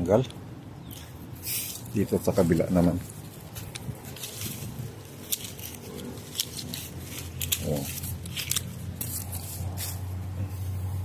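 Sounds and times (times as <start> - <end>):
pruning shears snipping: 3.5 - 10.1.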